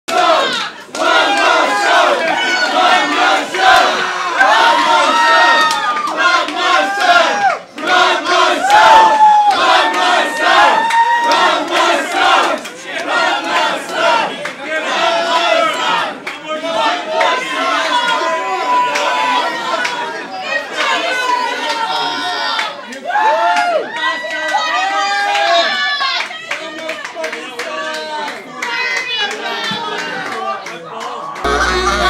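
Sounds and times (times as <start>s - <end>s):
crowd yelling and screaming: 0.1s - 12.5s, 16.8s - 26.4s.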